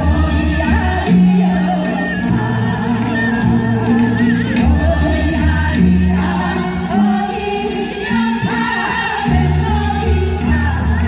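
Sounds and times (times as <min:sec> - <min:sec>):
sustained bass accompaniment: 0:00.0 - 0:11.0
voices singing together: 0:00.0 - 0:11.0.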